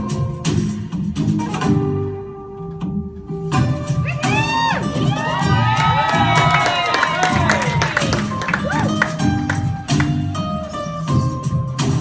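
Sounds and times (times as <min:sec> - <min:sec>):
background music: 0:00.0 - 0:12.0
audience cheering and whooping: 0:04.1 - 0:09.7.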